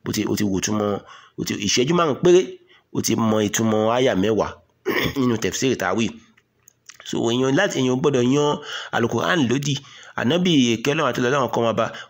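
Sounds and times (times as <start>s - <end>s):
man speaking into a microphone: 0.0s - 6.3s, 6.9s - 12.0s.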